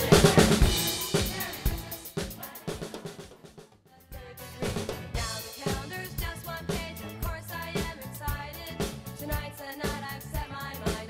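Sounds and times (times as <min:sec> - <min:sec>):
backing track music: 0:00.0 - 0:03.3, 0:04.1 - 0:11.0
drum kit playing: 0:00.0 - 0:11.0.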